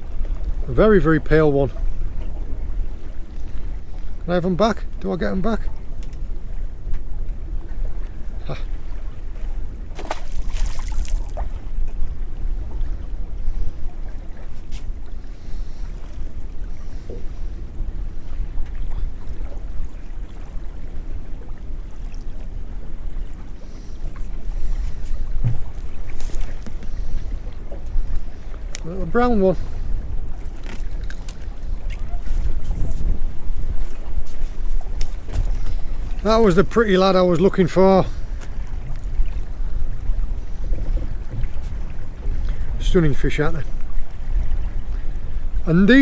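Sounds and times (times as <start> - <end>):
wind buffeting microphone: 0.0 - 46.0
clicks and rustles of fishing tackle: 25.8 - 26.8.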